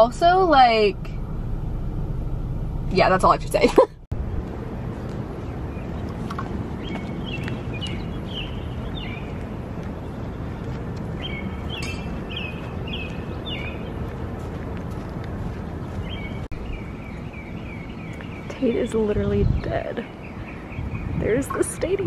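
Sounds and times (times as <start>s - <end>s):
low background rumble: 0.0s - 22.0s
songbird chirping: 4.7s - 22.0s.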